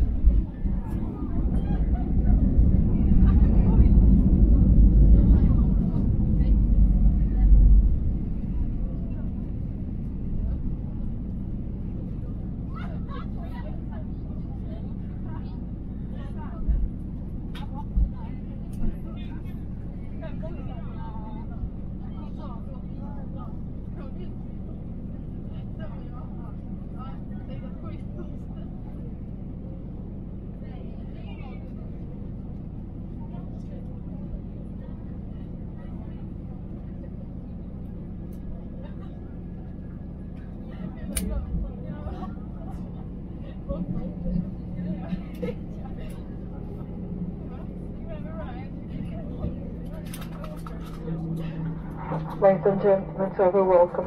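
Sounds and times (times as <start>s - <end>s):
airliner landing rumble: 0.0s - 54.0s.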